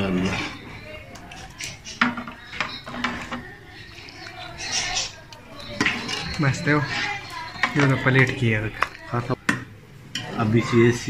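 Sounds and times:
metal dish and utensils clinking: 1.2 - 10.8.

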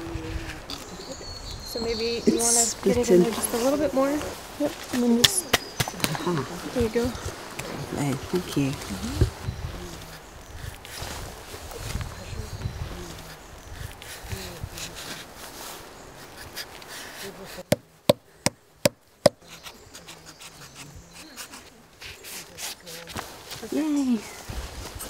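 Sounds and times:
blade scraping and rustling bark: 12.9 - 17.7, 19.4 - 25.0.

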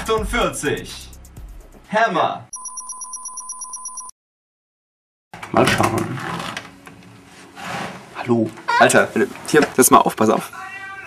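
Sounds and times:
electronic telephone ring: 2.5 - 4.1.

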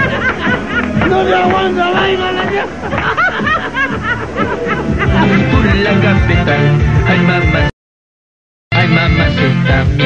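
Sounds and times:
person laughing: 0.0 - 1.4, 2.5 - 6.6
upbeat party music: 0.0 - 7.7, 8.7 - 10.0.

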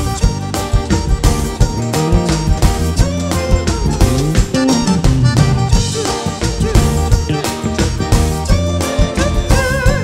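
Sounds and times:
bass drum and drum kit beat: 0.0 - 10.0
button accordion playing: 0.0 - 10.0.

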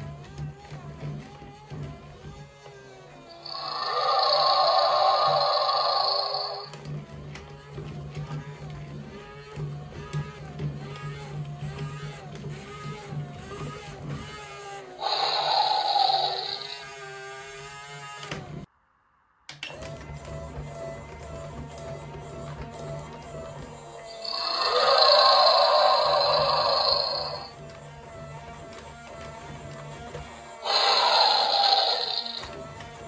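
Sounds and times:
toy dragon roar: 3.3 - 6.8, 15.0 - 16.9, 24.1 - 27.5, 30.6 - 32.6
toy motor humming: 3.3 - 6.8, 15.0 - 17.0, 23.9 - 27.6, 30.6 - 33.0
warbling tune: 3.4 - 6.7, 15.0 - 16.8, 24.1 - 27.5, 30.6 - 32.5.

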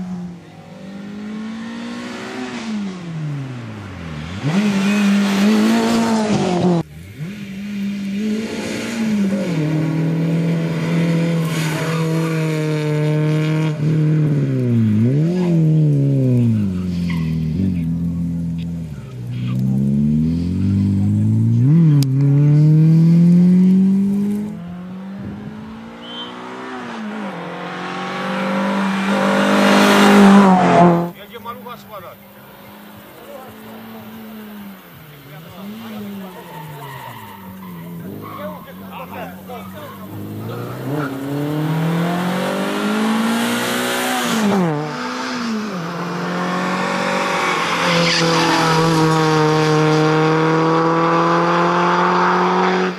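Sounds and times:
rally car engine revving: 0.0 - 52.9.

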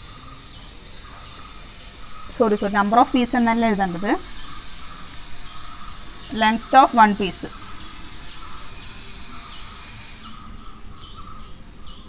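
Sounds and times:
chalk scratching on blackboard: 3.1 - 6.8.

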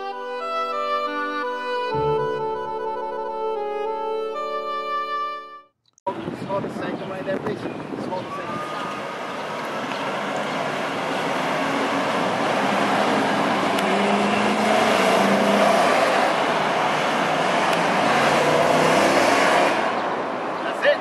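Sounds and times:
vehicles driving past: 8.2 - 21.0.

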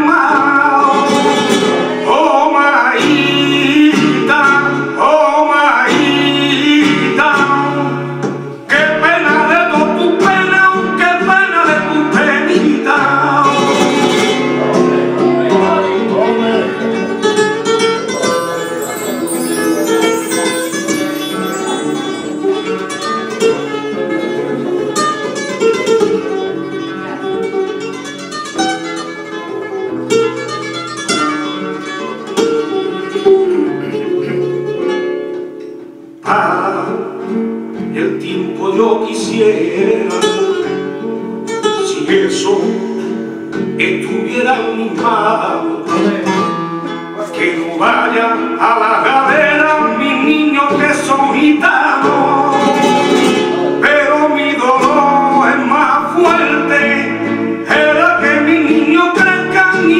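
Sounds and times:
man singing flamenco: 0.0 - 18.8, 33.2 - 35.0, 36.2 - 59.9
acoustic guitar: 0.0 - 59.9.

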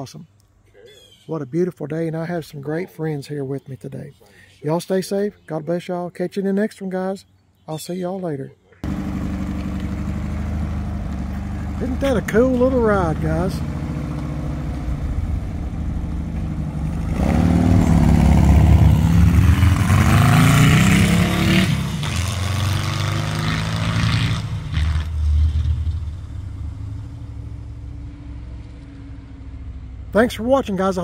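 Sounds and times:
buggy engine idling: 8.8 - 20.3
engine revving up: 8.8 - 29.7.

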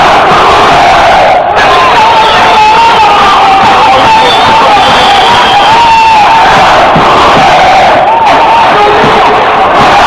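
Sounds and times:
crowd of demonstrators shouting: 0.0 - 10.0.

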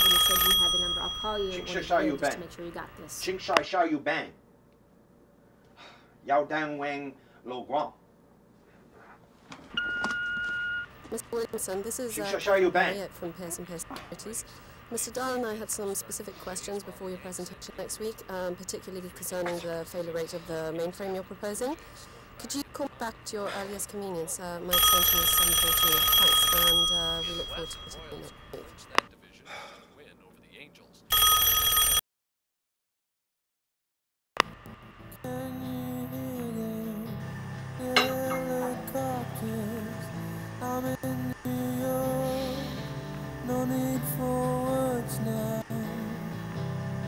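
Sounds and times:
telephone ringing: 0.0 - 2.5, 9.8 - 11.0, 24.6 - 28.8, 31.1 - 32.0
voicemail beep tone: 9.8 - 10.9, 24.8 - 28.5.

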